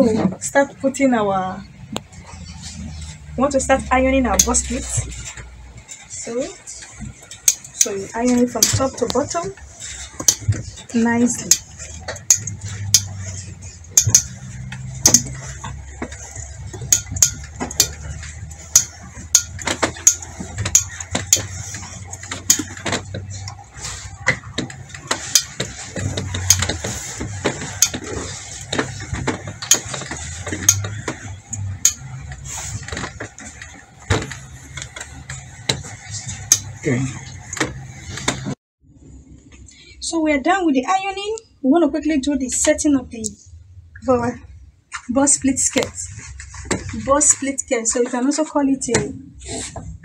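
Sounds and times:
steady low hum: 0.0 - 50.0
clothes iron clicks and knocks: 6.8 - 10.7, 11.3 - 13.3, 13.9 - 23.6, 24.2 - 36.8.

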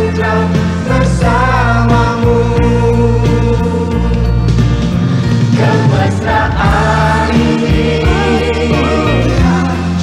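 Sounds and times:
song with singing and band: 0.0 - 10.0.

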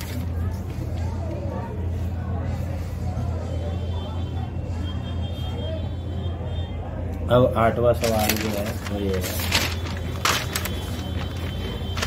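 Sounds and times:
faint voices murmuring: 0.0 - 12.0.

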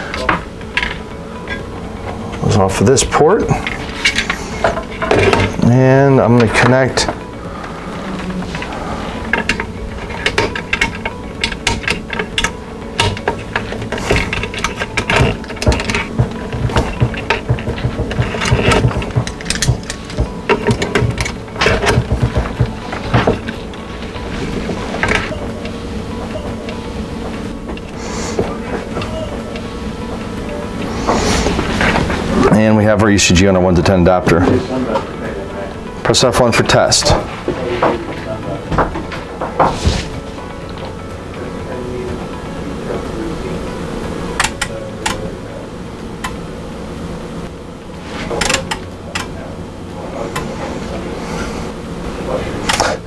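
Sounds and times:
steady hum: 0.0 - 53.0.

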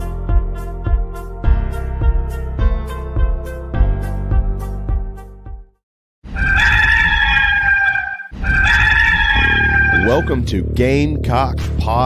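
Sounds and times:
rooster crowing: 6.3 - 10.3.

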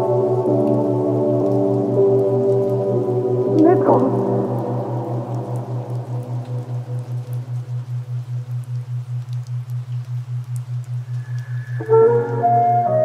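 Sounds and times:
ambient music: 0.0 - 9.4, 10.4 - 13.0
faint rain patter: 0.0 - 13.0.

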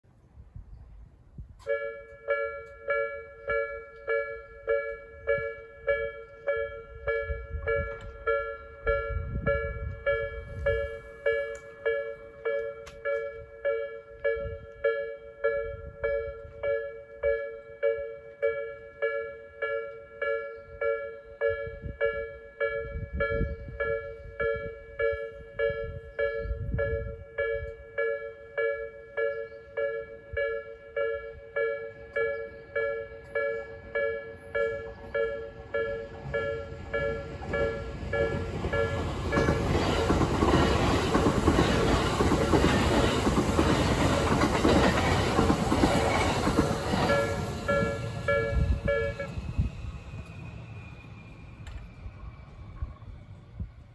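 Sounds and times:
train passing: 0.3 - 53.9
level crossing warning bell: 1.6 - 49.4
wheels clattering over rail joints: 33.2 - 48.9.

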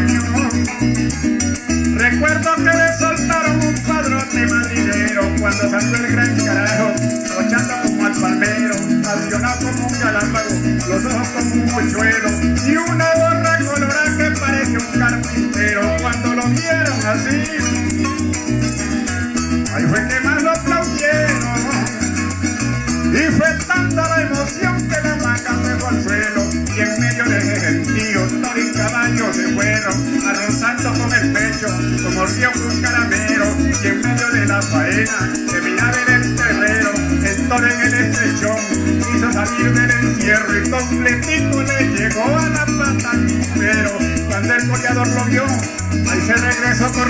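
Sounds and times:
cuatro plucking: 0.0 - 47.0
electric bass line: 0.0 - 47.0
maracas shaking: 0.0 - 47.0
harp plucking: 15.0 - 26.4, 27.0 - 43.2.

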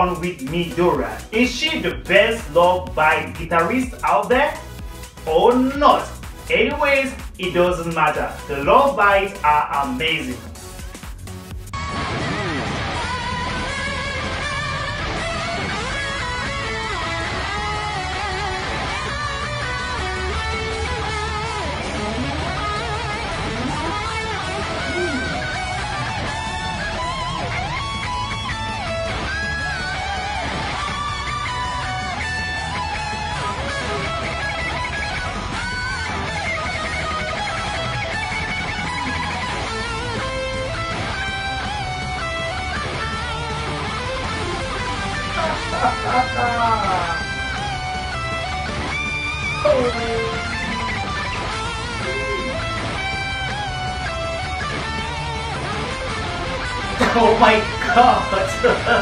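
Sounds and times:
backing track: 0.0 - 59.0
electric guitar lead: 0.0 - 59.0
heavy metal band: 11.8 - 59.0.

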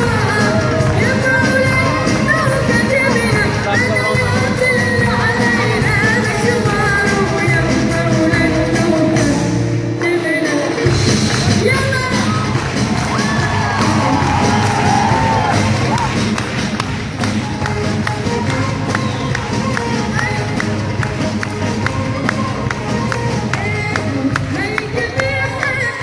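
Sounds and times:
boy singing amplified: 0.0 - 11.0, 22.0 - 26.0
live band music: 0.0 - 26.0
crowd cheering and whooping: 12.2 - 20.8.

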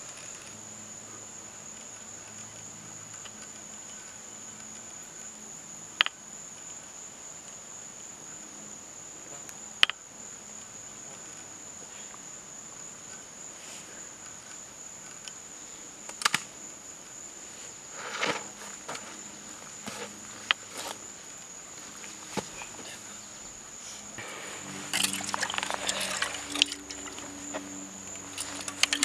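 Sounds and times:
insects droning: 0.0 - 29.0
sharp clicks: 16.1 - 16.5, 24.9 - 29.0.

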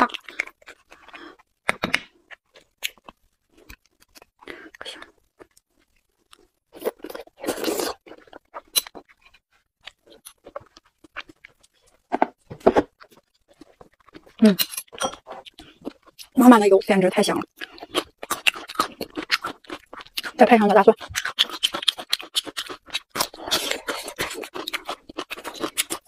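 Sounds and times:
wet chewing: 12.8 - 16.4, 17.4 - 26.0.

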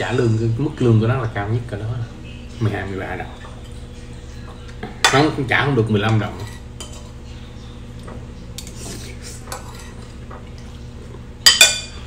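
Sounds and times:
fork clinking and scraping plate: 6.0 - 7.3, 8.0 - 10.8, 11.4 - 12.0.

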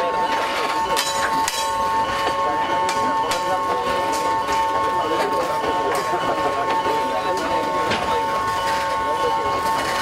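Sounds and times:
people talking: 0.0 - 10.0
steady high two-tone hum: 0.0 - 10.0.

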